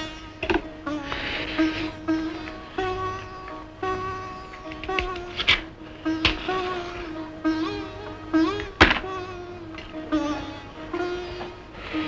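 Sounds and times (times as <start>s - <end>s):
sitar notes plucked: 0.0s - 12.0s.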